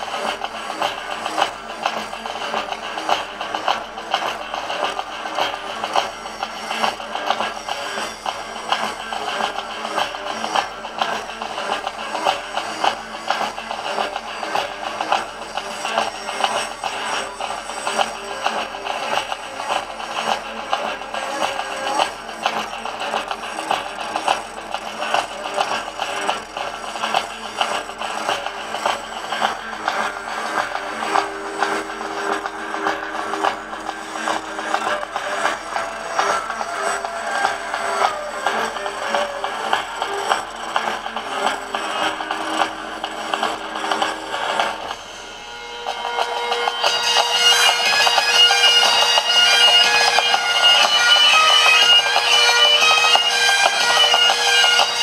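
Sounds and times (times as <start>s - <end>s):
music with steady beat: 0.0s - 55.0s
bagpipes playing: 22.6s - 55.0s.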